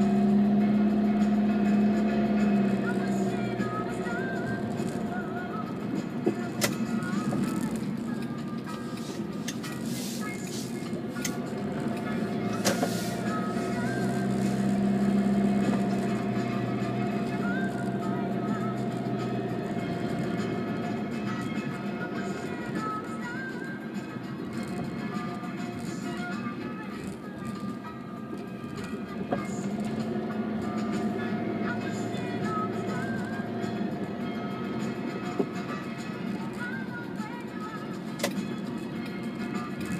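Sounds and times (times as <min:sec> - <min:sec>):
engine and road hum: 0:00.0 - 0:39.9
faint radio music: 0:00.0 - 0:39.9.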